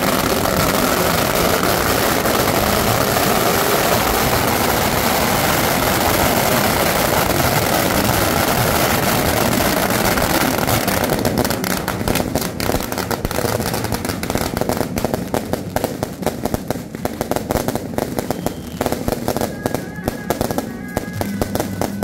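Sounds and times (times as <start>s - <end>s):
firecrackers crackling: 0.0s - 22.0s.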